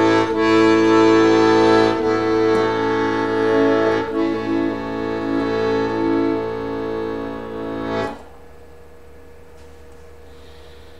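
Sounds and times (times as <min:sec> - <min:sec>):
piano accordion chords: 0:00.0 - 0:09.1.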